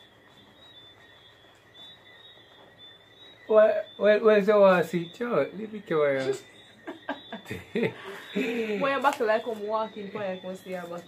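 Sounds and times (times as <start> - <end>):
high-pitched insect trill: 0.0 - 11.0.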